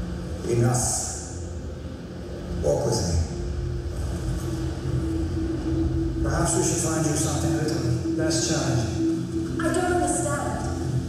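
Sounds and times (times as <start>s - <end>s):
low rumbling film score: 0.0s - 11.0s.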